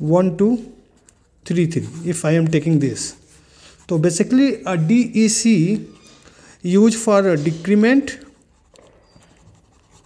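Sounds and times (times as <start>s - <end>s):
marker pen scratching on paper: 0.9s - 4.6s, 6.9s - 10.0s.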